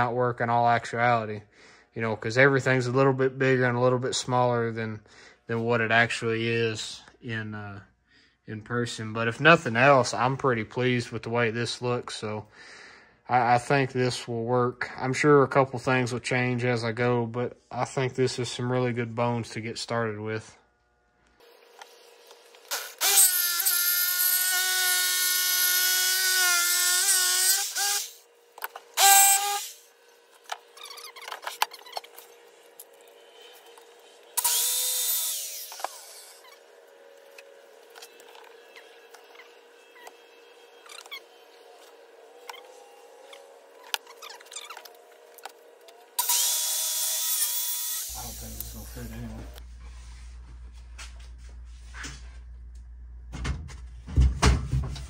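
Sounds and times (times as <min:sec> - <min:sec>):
power saw cutting board: 0:21.5 - 0:49.6.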